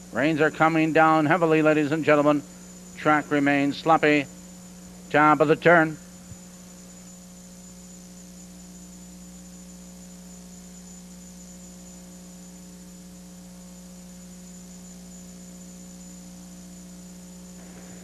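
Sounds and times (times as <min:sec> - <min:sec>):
low electrical hum: 0:00.0 - 0:18.0
thin high-pitched whine: 0:00.0 - 0:18.0.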